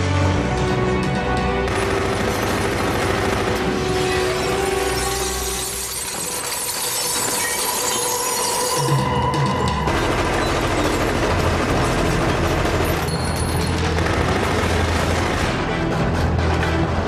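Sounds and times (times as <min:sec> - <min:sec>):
soundtrack music: 0:00.0 - 0:17.0
gunfire: 0:01.6 - 0:04.4, 0:09.8 - 0:16.0
glass window shattering: 0:04.0 - 0:08.9.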